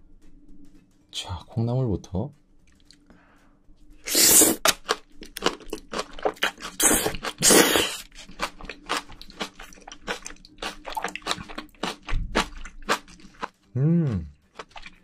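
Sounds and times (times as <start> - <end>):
slurping food: 4.1 - 4.8, 6.2 - 13.4
crisp crunchy chewing: 4.1 - 13.5, 14.5 - 15.0.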